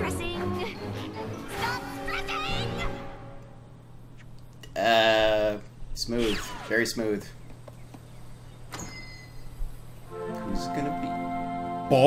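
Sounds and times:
faint high ringing: 0:08.7 - 0:09.5.

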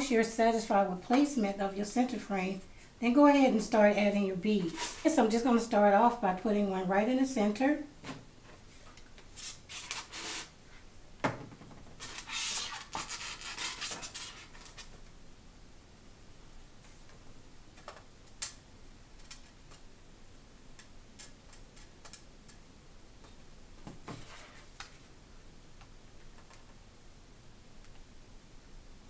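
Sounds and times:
hands rubbing craft materials: 0:04.6 - 0:05.1, 0:08.6 - 0:10.9, 0:12.0 - 0:14.9.

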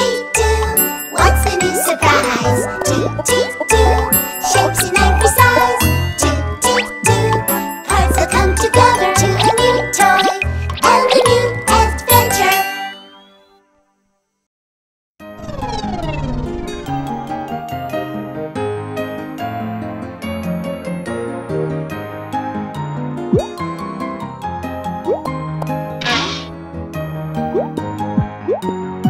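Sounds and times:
upbeat cartoon theme music: 0:00.0 - 0:13.5, 0:15.4 - 0:29.0
jingling chimes: 0:00.4 - 0:13.5.

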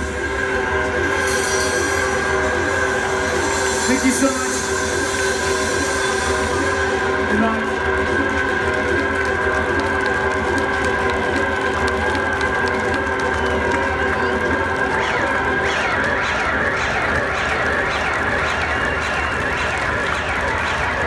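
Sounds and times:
audience cheering: 0:00.0 - 0:21.0
crowd shouting: 0:00.0 - 0:21.0.

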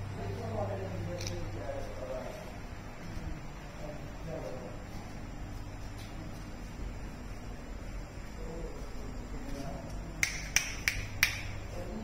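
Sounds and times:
faint murmur: 0:00.0 - 0:10.5
finger snaps: 0:10.2 - 0:11.6.

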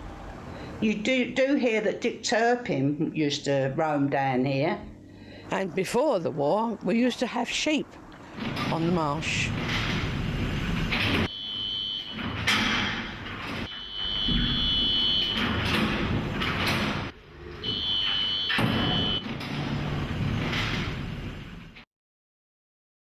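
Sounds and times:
lift doors sliding: 0:04.8 - 0:21.9.

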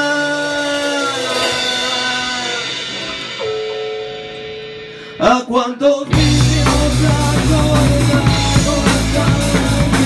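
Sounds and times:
man singing: 0:00.0 - 0:03.4, 0:05.1 - 0:10.0
electric guitar: 0:00.0 - 0:10.0.

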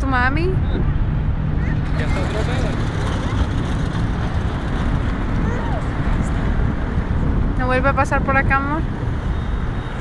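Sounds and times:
loud low outdoor rumble: 0:00.0 - 0:10.0
faint voices: 0:05.3 - 0:06.6.

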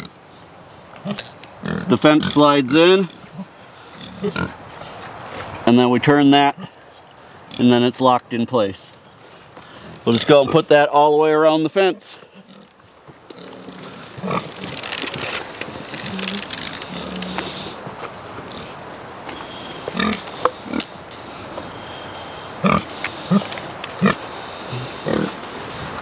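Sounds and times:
pig grunting: 0:01.0 - 0:04.6, 0:12.3 - 0:12.7, 0:13.4 - 0:15.2, 0:15.9 - 0:17.8, 0:19.9 - 0:20.9, 0:22.6 - 0:25.4.

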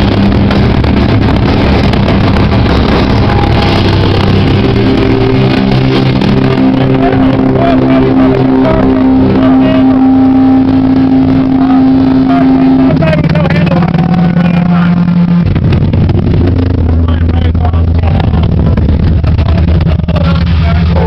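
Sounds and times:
drums and crashing cymbals: 0:00.0 - 0:09.0
distorted guitar and bass: 0:00.0 - 0:21.0.

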